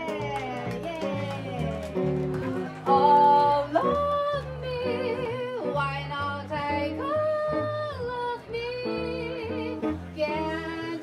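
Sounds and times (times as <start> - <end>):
electric guitar: 0.0 - 11.0
plucked upright bass: 0.0 - 11.0
woman singing jazz: 0.0 - 11.0.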